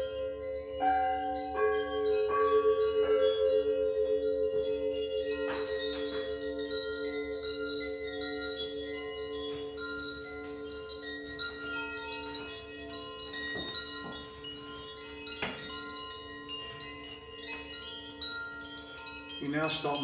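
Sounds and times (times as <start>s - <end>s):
metal chimes tinkling: 0.0s - 20.0s.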